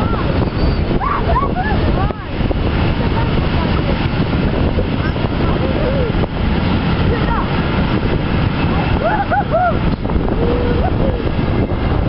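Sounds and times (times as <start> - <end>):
freight train wheels rumbling: 0.0 - 12.0
wind buffeting microphone: 0.0 - 12.0.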